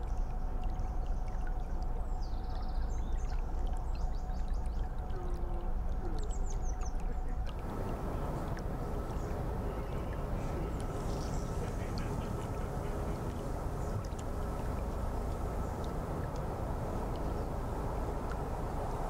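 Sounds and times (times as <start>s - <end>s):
hum and hiss with high tone: 7.4s - 19.0s
boat diesel engine rumble: 7.6s - 19.0s.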